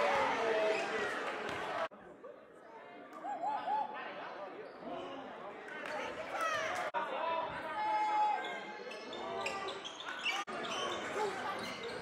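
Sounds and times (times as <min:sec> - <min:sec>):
gym crowd noise: 0:00.0 - 0:12.0.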